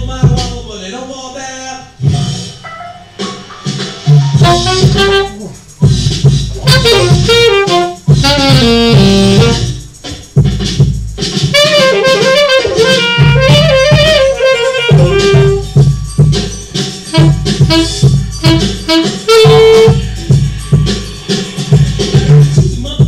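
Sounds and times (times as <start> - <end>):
saxophone melody: 4.2 - 9.9, 11.5 - 16.2, 17.0 - 20.5.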